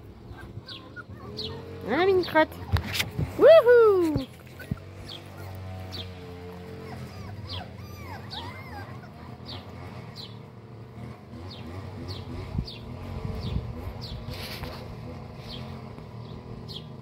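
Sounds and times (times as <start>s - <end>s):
puppies whimpering: 0.0s - 2.7s, 4.0s - 10.6s
bird chirping: 0.3s - 2.4s.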